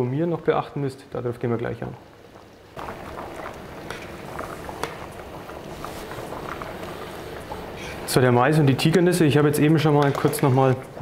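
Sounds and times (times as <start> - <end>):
pot bubbling and hissing: 0.0 - 11.0.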